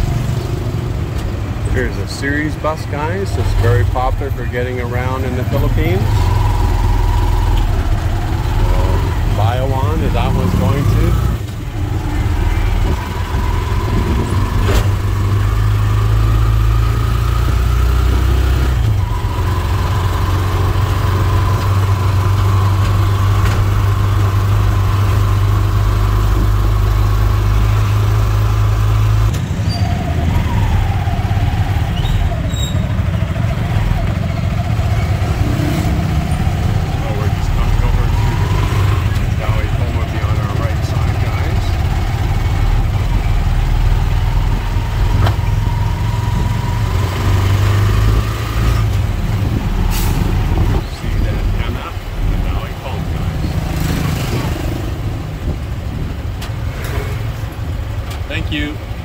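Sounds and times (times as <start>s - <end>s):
engine whine: 0.0s - 59.0s.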